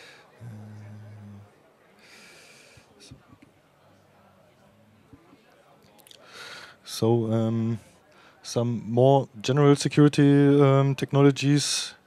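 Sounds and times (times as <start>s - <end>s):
man humming: 0.4s - 1.5s
breath into microphone: 6.2s - 6.8s.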